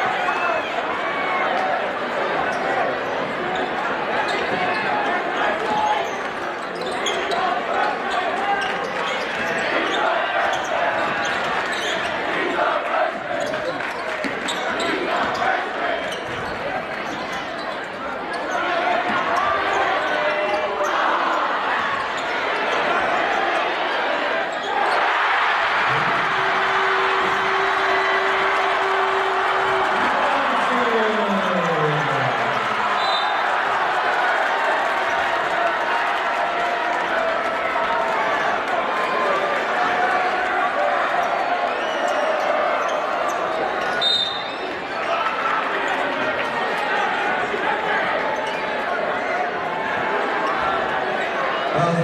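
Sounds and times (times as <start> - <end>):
crowd shouting and chattering: 0.0 - 52.0.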